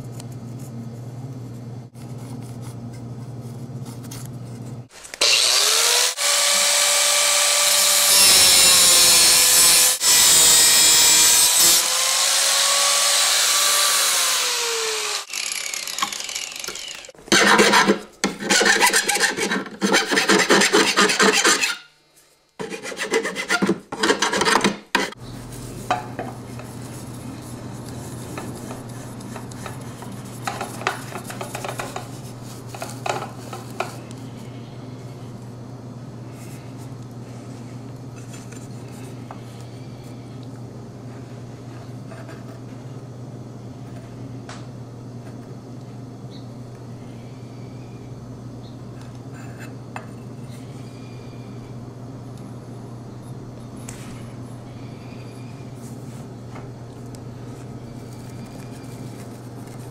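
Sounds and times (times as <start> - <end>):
power tool cutting metal: 5.2 - 21.8
file strokes on metal: 17.4 - 21.9, 22.6 - 25.2.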